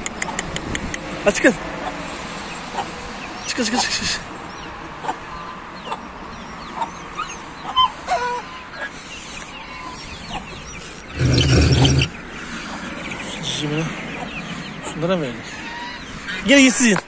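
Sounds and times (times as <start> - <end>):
young chickens clucking and peeping: 1.8 - 3.8, 4.5 - 16.7
loud rough noise: 11.2 - 12.2.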